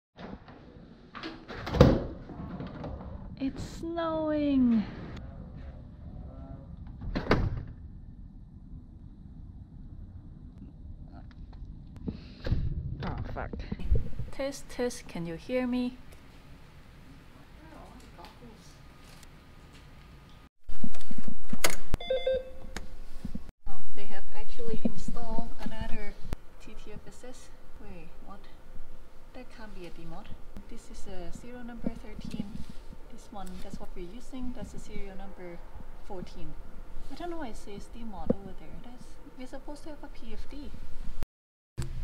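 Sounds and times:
wind rumbling on microphone: 8.9 - 14.4
short electronic beep: 22.0 - 22.6.

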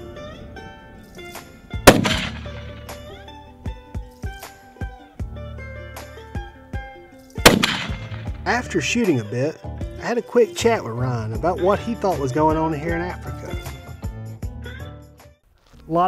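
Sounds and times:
background music: 0.0 - 15.5
rifle shots with echo: 1.8 - 3.0, 7.4 - 8.4.

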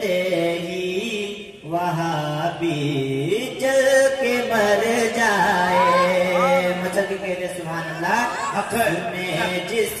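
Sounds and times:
man singing solo: 0.0 - 10.0.

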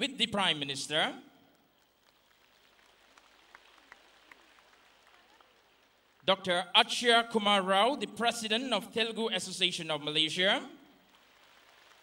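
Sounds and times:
faint scattered applause: 1.6 - 6.3, 11.0 - 12.0.

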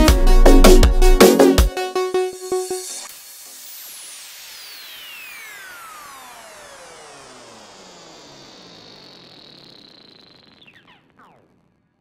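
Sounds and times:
electronic downward sweep: 1.8 - 12.0
thin high whine: 1.9 - 12.0.

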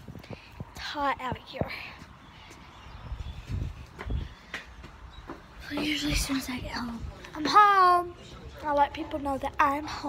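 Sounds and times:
wind rumbling on microphone: 0.0 - 7.4.

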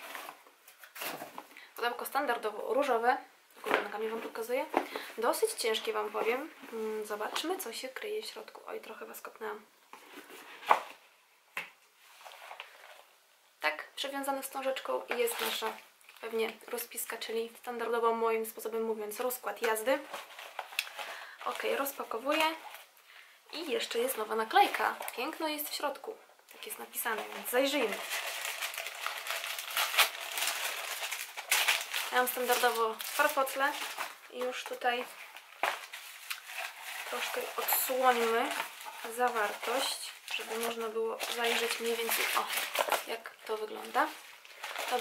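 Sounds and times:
paper packing rustling: 19.6 - 22.9, 27.1 - 45.0.

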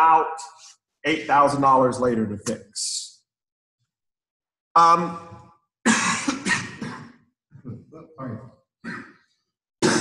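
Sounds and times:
man coughing: 5.8 - 9.2, 9.8 - 10.0.

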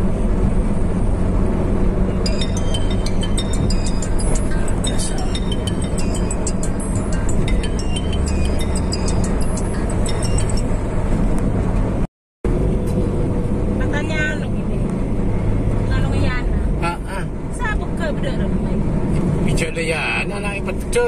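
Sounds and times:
road and engine rumble in vehicle: 0.0 - 21.0
music: 2.2 - 10.7
voices: 4.3 - 7.2, 15.9 - 18.8.

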